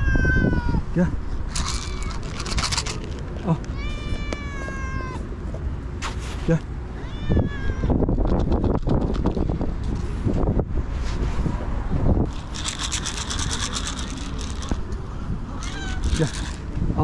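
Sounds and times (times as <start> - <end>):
cat meowing: 0.0 - 0.8, 1.6 - 2.4, 3.6 - 5.2, 7.0 - 8.0, 15.6 - 16.6
brief scuffing noises: 6.0 - 6.6.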